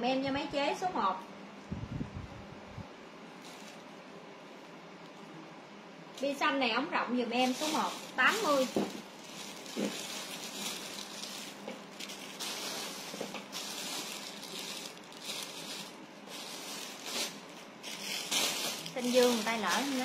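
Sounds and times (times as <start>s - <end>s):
clothes rustling: 7.4s - 20.0s.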